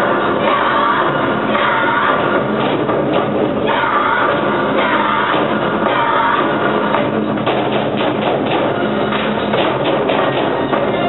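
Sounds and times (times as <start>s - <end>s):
drummers beating drums in unison: 0.0s - 11.0s
loud stage music: 0.0s - 11.0s.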